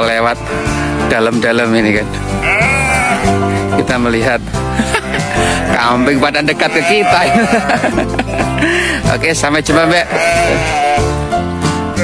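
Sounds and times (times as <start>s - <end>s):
background music: 0.0s - 12.0s
goats bleating: 0.4s - 1.1s, 2.2s - 3.6s, 4.9s - 8.8s, 9.6s - 11.2s.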